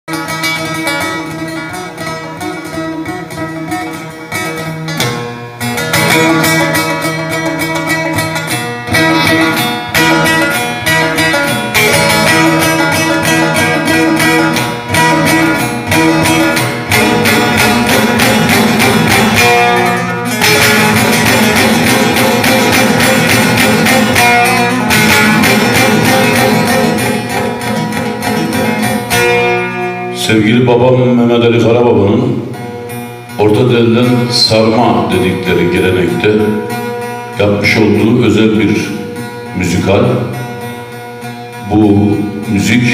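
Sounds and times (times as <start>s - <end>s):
long-necked lute picked fast: 0.1s - 42.9s.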